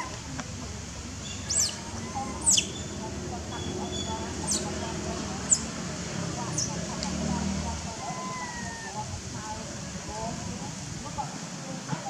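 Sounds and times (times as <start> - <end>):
faint whistled calls: 1.2 - 4.7.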